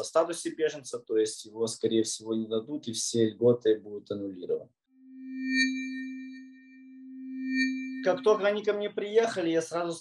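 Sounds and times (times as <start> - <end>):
low electronic tone: 5.0 - 9.4
high chime-like shimmer: 5.2 - 9.4.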